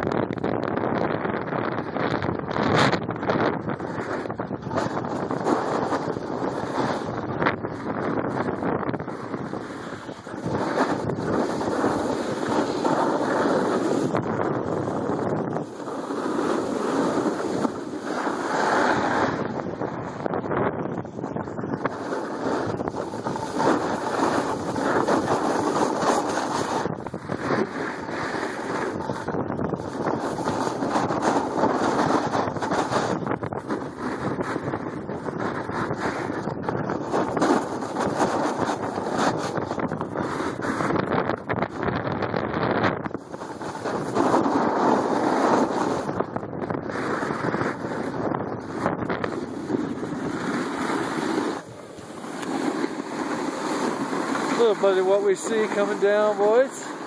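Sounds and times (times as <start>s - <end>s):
wind rushing over microphone: 0.0s - 57.0s
skis scraping on packed snow: 3.9s - 7.1s, 9.1s - 14.2s, 15.3s - 19.5s, 21.7s - 34.8s, 35.4s - 41.0s, 43.2s - 46.2s, 46.8s - 57.0s.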